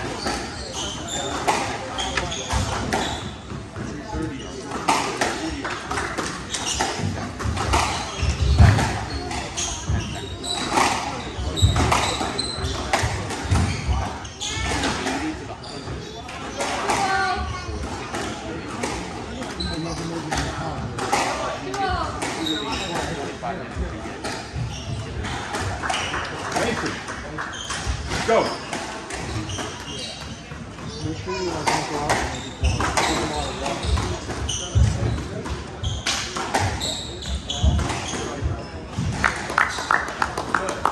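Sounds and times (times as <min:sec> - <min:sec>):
squash ball hitting racquets and walls: 0:00.0 - 0:15.3, 0:16.3 - 0:39.6
spectators talking: 0:00.0 - 0:40.9.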